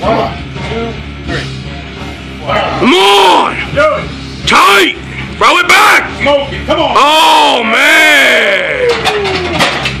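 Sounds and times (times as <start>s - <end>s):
man shouting: 2.8s - 3.6s, 6.9s - 9.0s.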